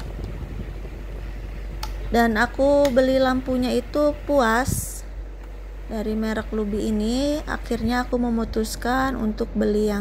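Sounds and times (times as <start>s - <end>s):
small desk fan running: 0.0s - 10.0s.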